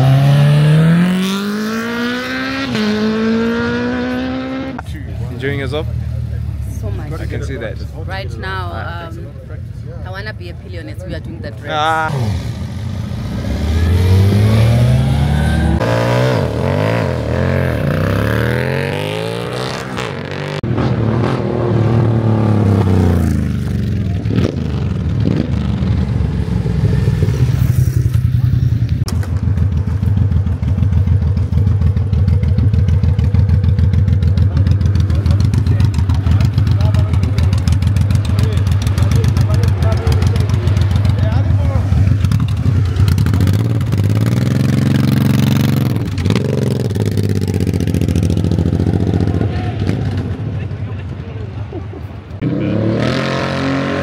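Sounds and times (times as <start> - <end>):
motorcycle revving and pulling away: 0.0 - 9.4, 11.0 - 54.0
motorcycle idling and revving: 0.0 - 54.0.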